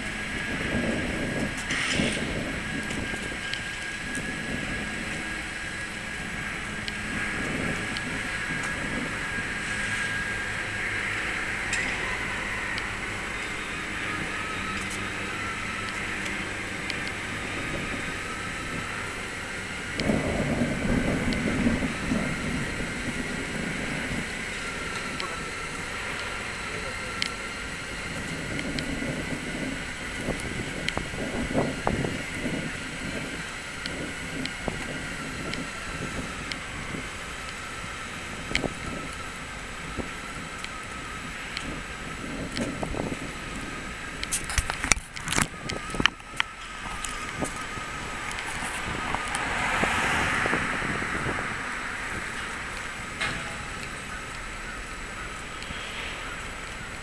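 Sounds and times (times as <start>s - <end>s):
city traffic hum: 0.0s - 57.0s
low engine drone: 0.0s - 57.0s.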